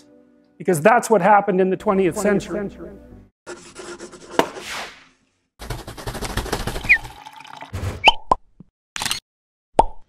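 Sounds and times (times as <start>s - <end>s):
cartoon pops and blips: 9.8s - 10.0s.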